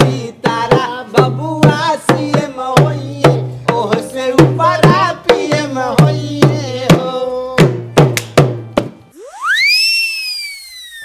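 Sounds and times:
comic whistle sound effect: 9.1 - 11.0.

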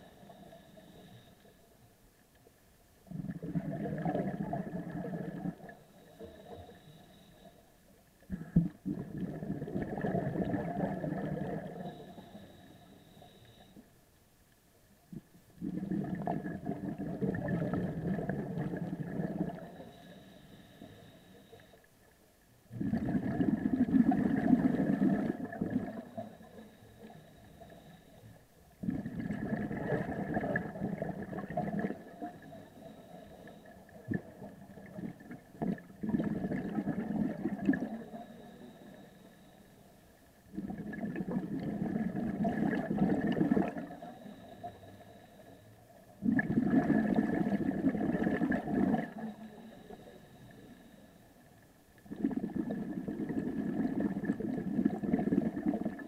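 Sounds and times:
exhaled bubbles gurgling underwater: 3.0 - 7.3, 8.2 - 13.8, 15.1 - 21.8, 22.6 - 39.6, 40.4 - 56.0.

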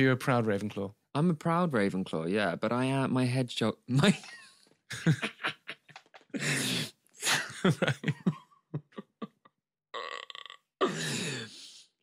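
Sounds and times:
man rasping vocal noise: 6.3 - 7.5.

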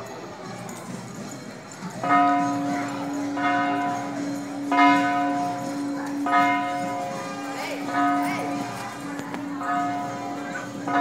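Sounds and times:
crowd voices: 0.0 - 11.0
large bell struck: 2.0 - 11.0.

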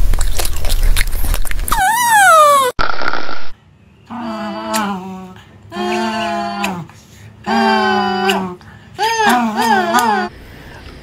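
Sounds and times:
loud falling cry: 1.8 - 2.8.

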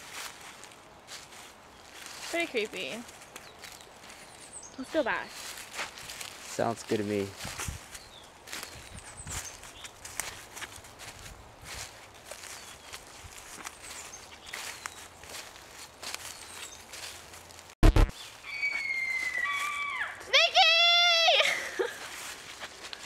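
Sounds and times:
brush crackling and rustling: 0.0 - 23.0
footsteps through dry leaves: 0.0 - 23.0
loud thump: 17.8 - 18.1.

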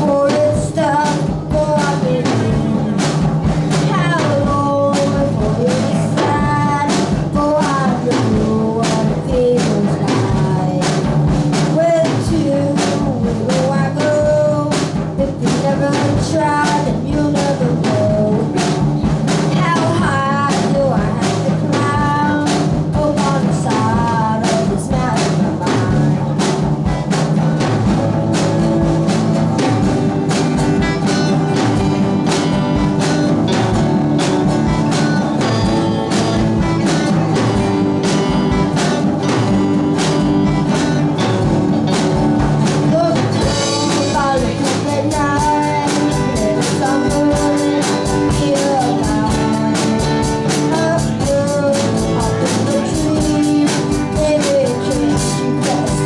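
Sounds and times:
drum kit beat: 0.0 - 56.0
person singing: 0.0 - 56.0
strummed acoustic guitar: 0.0 - 56.0.

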